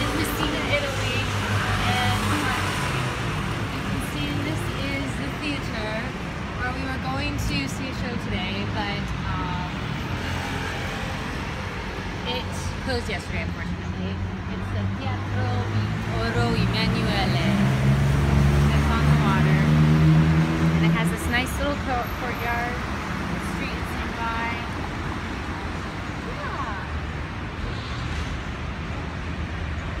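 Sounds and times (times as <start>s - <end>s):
passing cars: 0.0s - 30.0s.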